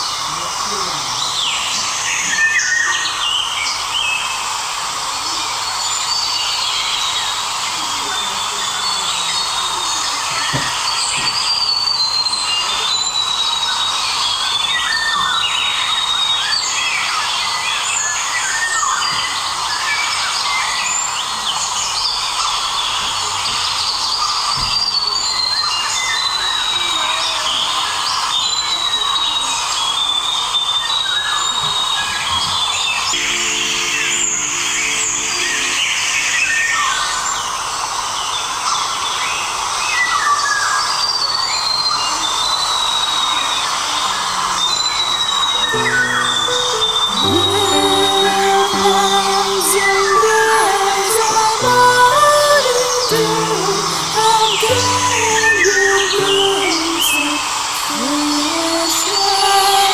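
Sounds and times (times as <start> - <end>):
birds chirping and calling: 44.6 - 57.4.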